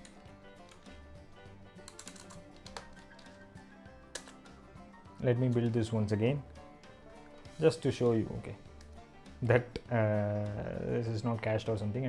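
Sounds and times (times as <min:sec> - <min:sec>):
faint background music: 0:00.0 - 0:12.0
computer keyboard keystrokes: 0:01.9 - 0:03.4.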